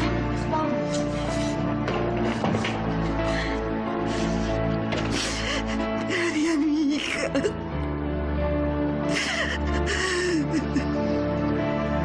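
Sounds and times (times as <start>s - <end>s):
woman sobbing: 5.1s - 7.8s, 9.0s - 11.1s.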